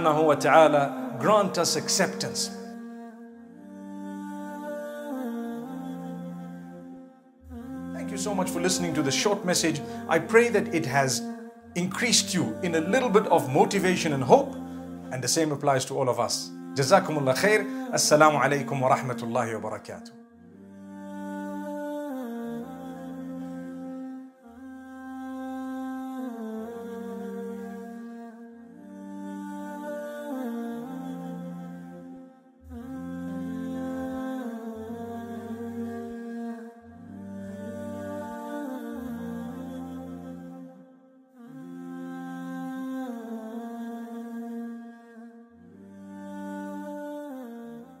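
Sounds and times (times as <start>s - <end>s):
layered vocal humming: 0.0s - 48.0s.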